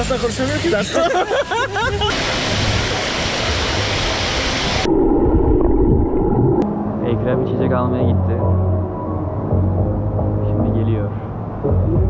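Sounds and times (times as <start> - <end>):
underwater bubbling rumble: 4.7 - 6.6.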